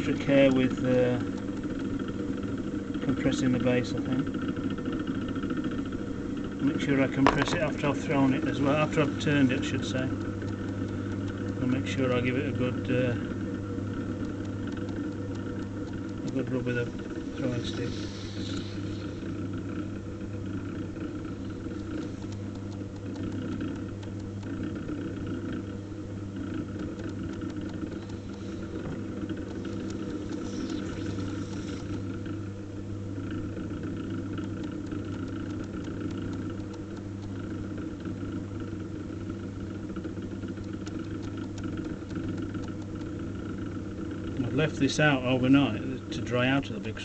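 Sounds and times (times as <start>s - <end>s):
pottery wheel motor humming: 0.0s - 47.0s.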